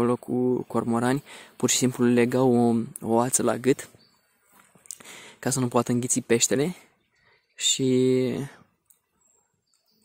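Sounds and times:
faint click: 0:08.8 - 0:09.1.

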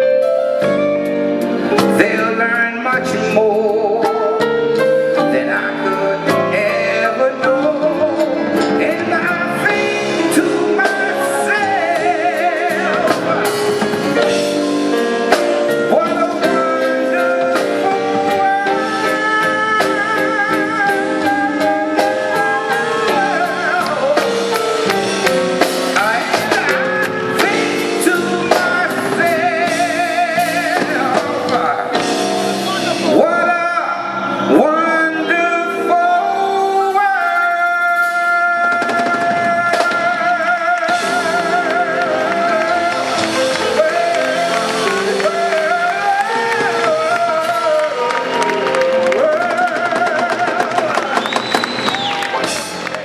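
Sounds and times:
man singing a slow ballad: 0:00.0 - 0:51.9
instrumental backing: 0:00.0 - 0:53.0
audience applauding and cheering: 0:11.2 - 0:28.1, 0:38.8 - 0:53.0
high whistle from crowd: 0:51.0 - 0:52.8.

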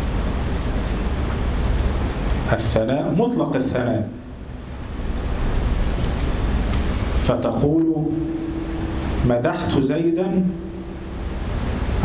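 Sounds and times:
low hum: 0:00.0 - 0:12.0
rushing room noise: 0:00.0 - 0:12.0.

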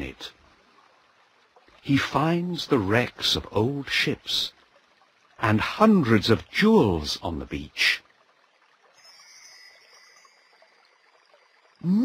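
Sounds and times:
high ringing chime tones: 0:09.0 - 0:11.1.

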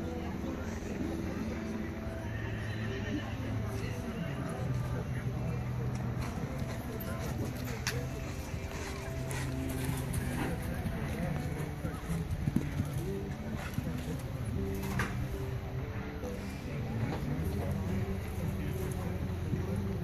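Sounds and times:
muffled background voices: 0:00.0 - 0:20.0.

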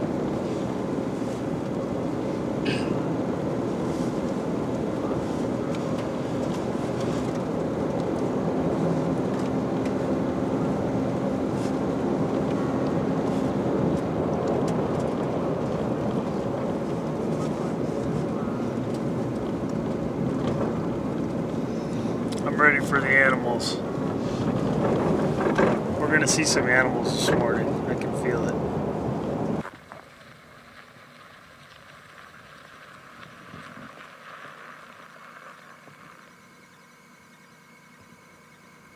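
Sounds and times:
pickup engine drone: 0:00.0 - 0:38.9
tyres on snowy road: 0:00.0 - 0:38.9.

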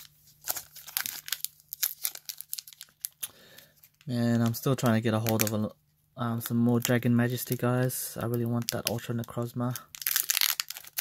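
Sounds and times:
foil wrapper crinkling and tearing: 0:00.0 - 0:05.6, 0:06.4 - 0:11.0.

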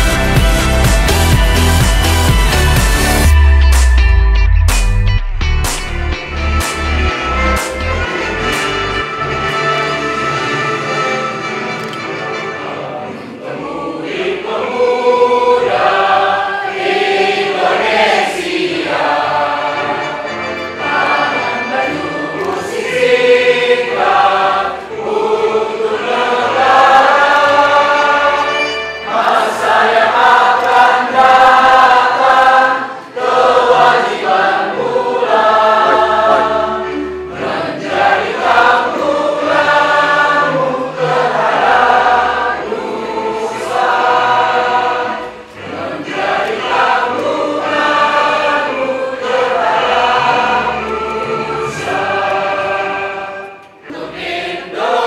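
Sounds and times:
crowd singing together: 0:10.3 - 0:55.0.

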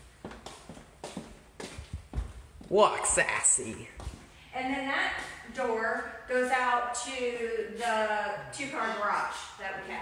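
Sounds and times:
footsteps on hard floor: 0:00.0 - 0:04.4.

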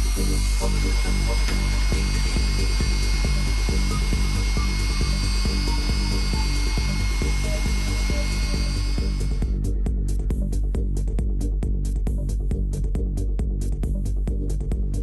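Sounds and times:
belt grinder motor whine: 0:00.0 - 0:09.6
electronic music with beat: 0:00.0 - 0:15.0.

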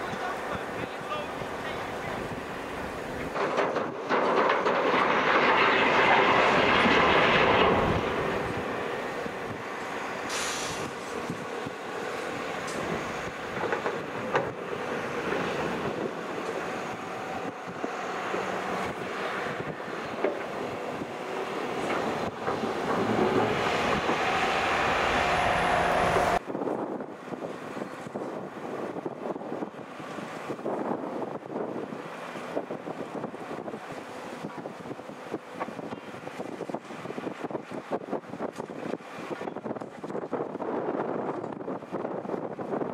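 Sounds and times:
distant machinery: 0:00.0 - 0:26.4
diesel engines of heavy machinery: 0:00.0 - 0:42.9
wind noise on microphone: 0:00.0 - 0:42.9.

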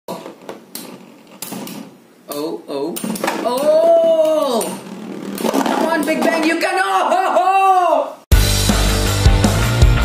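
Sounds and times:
spinning tops scraping on plastic: 0:04.5 - 0:06.6.

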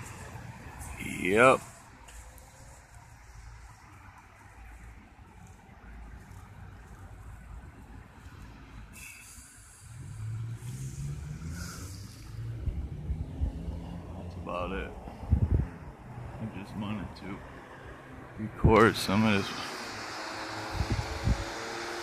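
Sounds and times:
low traffic rumble: 0:00.0 - 0:22.0
vehicle engine approaching: 0:00.0 - 0:22.0.

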